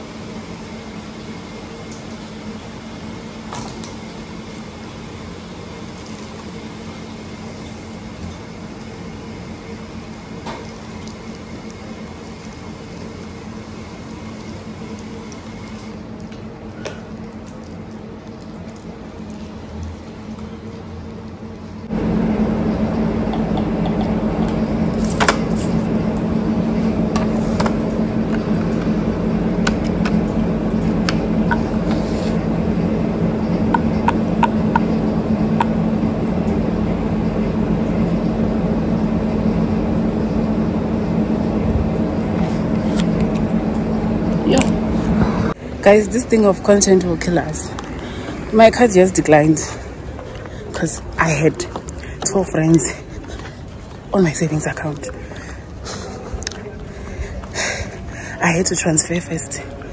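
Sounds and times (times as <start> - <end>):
low machine hum: 0.0 - 59.9.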